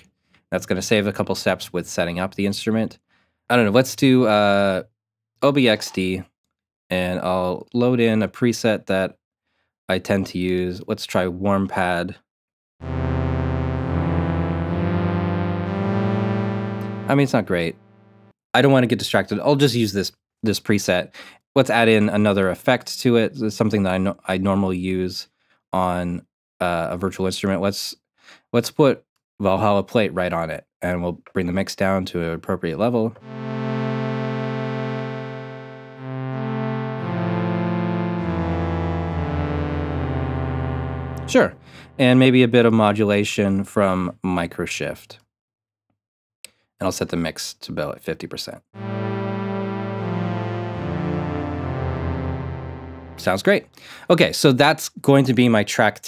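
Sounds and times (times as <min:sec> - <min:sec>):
low bass note: 0:12.8 - 0:18.3, 0:33.2 - 0:42.3, 0:48.8 - 0:53.6
synthesizer pad chords: 0:12.8 - 0:18.3, 0:33.2 - 0:42.2, 0:48.8 - 0:53.6.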